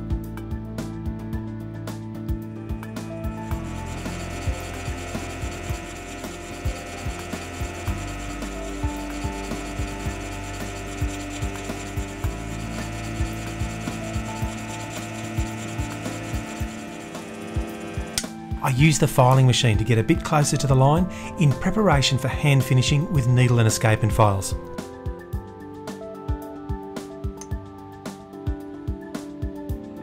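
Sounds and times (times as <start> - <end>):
steady low hum: 2.7 - 18.7.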